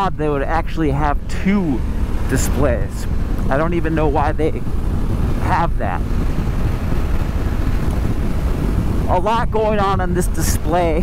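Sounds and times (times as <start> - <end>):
wind and road noise: 0.0 - 11.0
wind buffeting microphone: 0.0 - 11.0.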